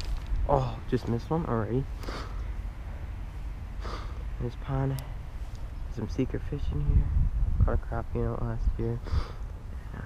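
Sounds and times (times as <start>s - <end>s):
low steady rumble: 0.0s - 10.0s
man breathing sharply: 2.0s - 3.1s, 3.8s - 4.3s, 9.0s - 9.5s.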